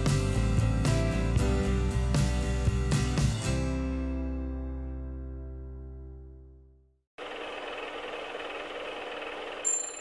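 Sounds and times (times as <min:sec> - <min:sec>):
mechanical rattling whir: 0:07.2 - 0:10.0
high bell-like ding: 0:09.6 - 0:10.0.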